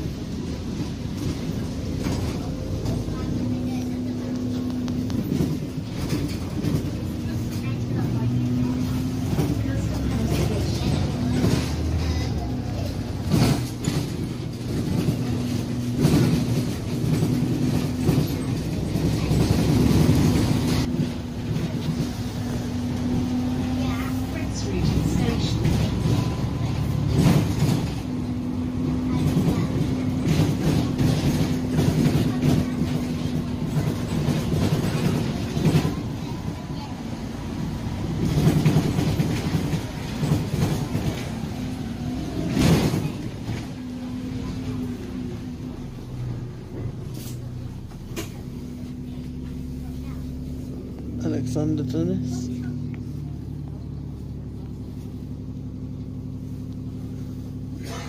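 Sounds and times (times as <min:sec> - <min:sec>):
bus drivetrain drone: 0:00.0 - 0:58.0
knocks and rattles from bus body: 0:00.0 - 0:58.0
road noise: 0:00.0 - 0:58.0.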